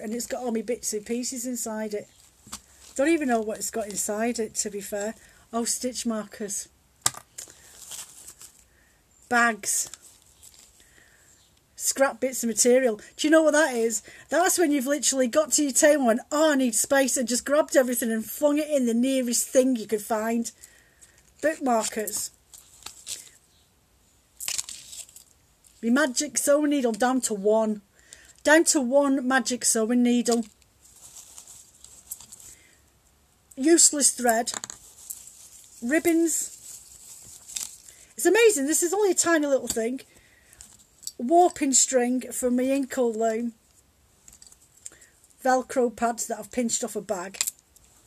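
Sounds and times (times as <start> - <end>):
hands rummaging through fabric pouch: 2.0 - 4.1, 7.0 - 8.7, 9.8 - 10.8, 21.2 - 23.4, 24.4 - 25.8, 30.3 - 32.6, 34.5 - 38.1
rummaging in fabric pouch: 7.5 - 8.6, 30.3 - 32.6, 34.6 - 38.1.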